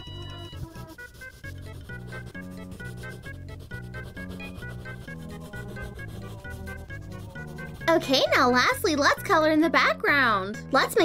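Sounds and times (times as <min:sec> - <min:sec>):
keyboard tune with steady beat: 0:00.0 - 0:08.3
pencil rubbing on paper: 0:00.0 - 0:09.4.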